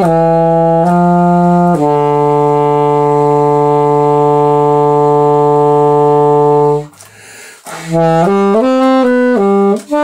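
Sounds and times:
alto saxophone long low note: 0:00.0 - 0:06.9, 0:07.7 - 0:10.0.

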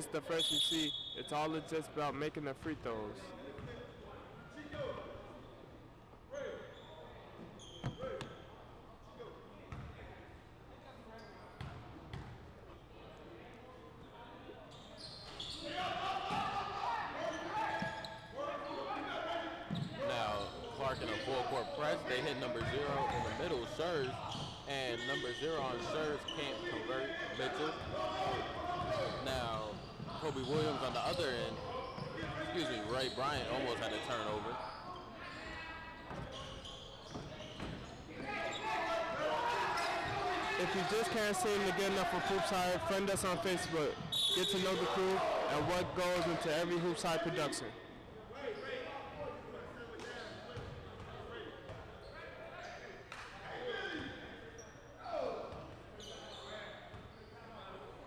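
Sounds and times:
voices of players and spectators: 0:00.0 - 0:58.0.

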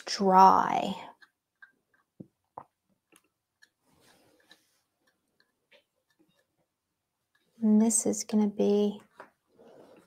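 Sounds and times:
palette knife dabbing paint: 0:00.8 - 0:07.6.

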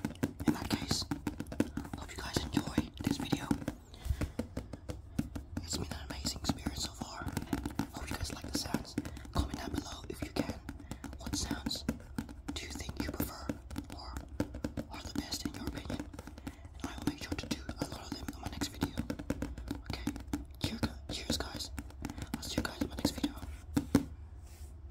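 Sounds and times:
finger clicks and taps: 0:00.0 - 0:24.1
breathy whispering: 0:00.4 - 0:04.2, 0:05.6 - 0:11.9, 0:12.6 - 0:19.1, 0:19.7 - 0:23.5.

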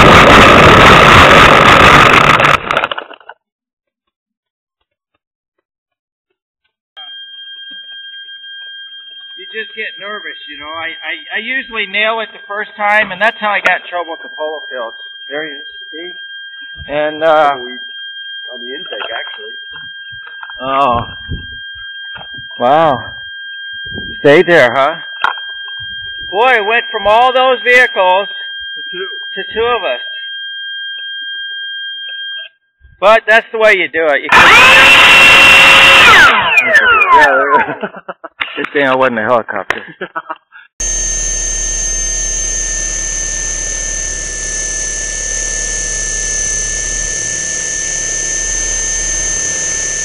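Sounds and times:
high-pitched electronic tone: 0:00.0 - 0:02.9, 0:07.0 - 0:17.9, 0:18.5 - 0:23.2, 0:34.3 - 0:37.4, 0:40.8 - 0:50.0.

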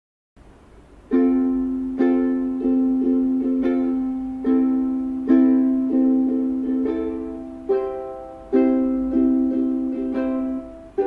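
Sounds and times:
ukulele strummed in slow chords: 0:01.0 - 0:11.0.

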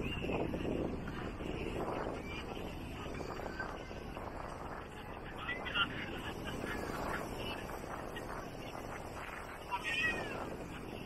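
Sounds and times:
surf washing: 0:00.0 - 0:11.0.

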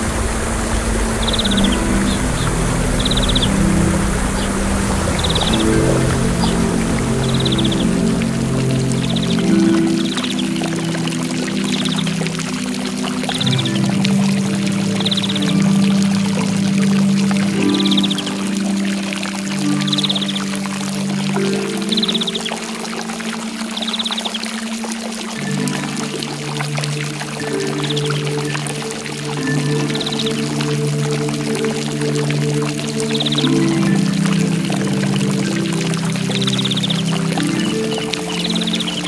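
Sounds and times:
cricket chirping: 0:00.0 - 0:24.4
slow piano chords: 0:00.0 - 0:39.0
waterfall rushing: 0:00.0 - 0:39.0.

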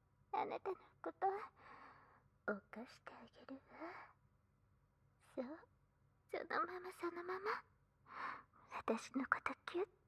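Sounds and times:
woman whispering: 0:02.5 - 0:04.2, 0:06.5 - 0:07.6, 0:08.7 - 0:09.9.

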